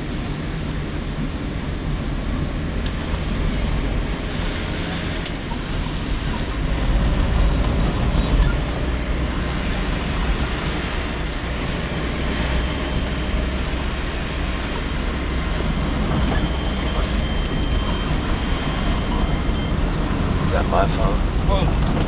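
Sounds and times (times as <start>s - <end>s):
deep rumble: 0.0s - 22.0s
road and engine noise inside car: 0.0s - 22.0s.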